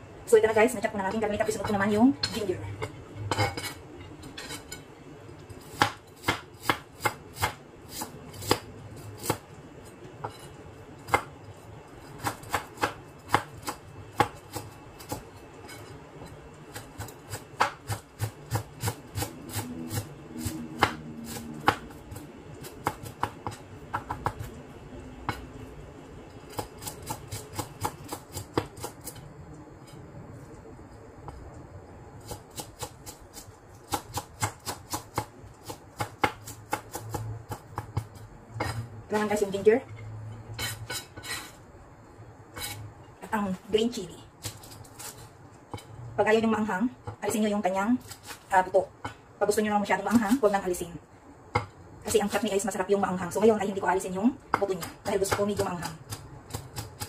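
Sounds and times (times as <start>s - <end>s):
knife chopping on cutting board: 5.7s - 9.4s, 12.2s - 15.2s, 16.7s - 22.0s, 32.2s - 39.3s.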